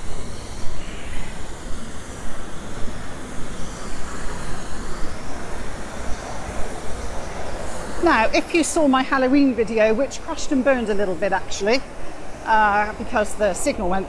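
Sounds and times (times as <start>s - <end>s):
high whine: 0.0s - 14.0s.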